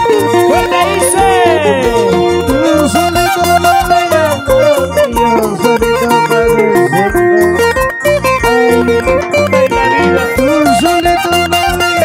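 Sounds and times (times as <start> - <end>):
plucked-string melody: 0.0 - 12.0
pulsing bass beat: 0.0 - 12.0.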